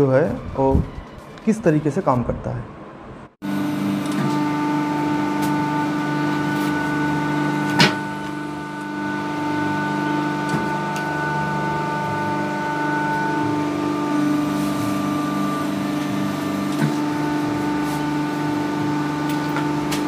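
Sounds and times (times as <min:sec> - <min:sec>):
machine humming: 0:02.7 - 0:20.0.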